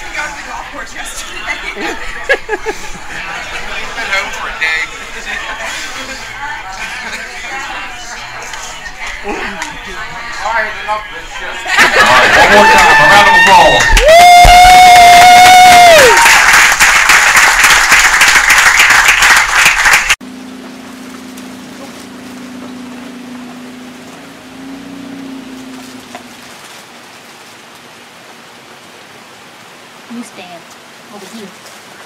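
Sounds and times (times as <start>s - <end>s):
excited crowd noise: 0.0s - 20.2s
people clapping: 8.4s - 9.9s, 11.8s - 20.2s
loud high-pitched scream: 12.4s - 16.3s.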